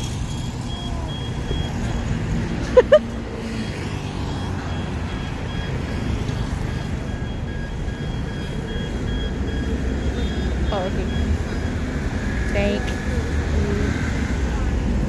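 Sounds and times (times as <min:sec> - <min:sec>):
rumble of passing traffic: 0:00.0 - 0:15.0.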